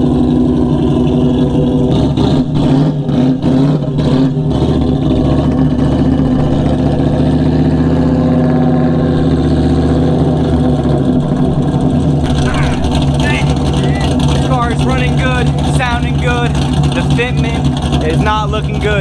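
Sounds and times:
car engine deep exhaust note: 0:00.0 - 0:19.0.

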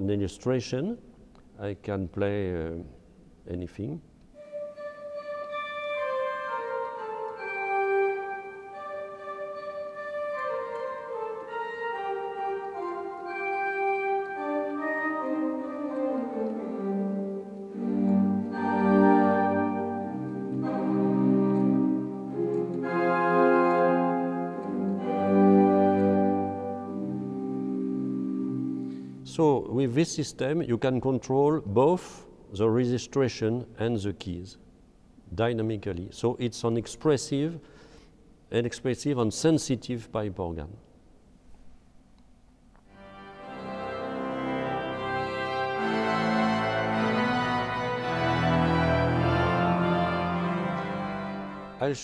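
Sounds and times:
pipe organ playing: 0:04.4 - 0:30.1, 0:42.9 - 0:52.0.

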